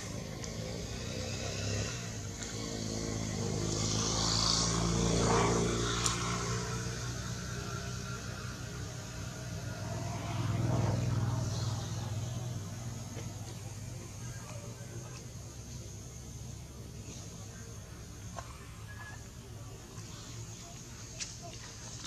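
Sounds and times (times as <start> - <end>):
small motorcycle engine running: 0.0 - 22.0.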